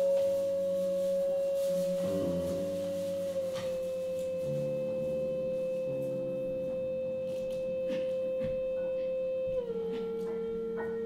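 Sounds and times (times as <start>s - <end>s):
long held musical tone: 0.0s - 11.0s
low sustained notes: 0.0s - 11.0s.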